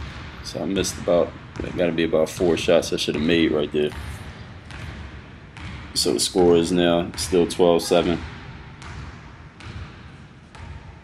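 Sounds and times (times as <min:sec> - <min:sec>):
basketball bouncing on gym floor: 0:00.0 - 0:11.0.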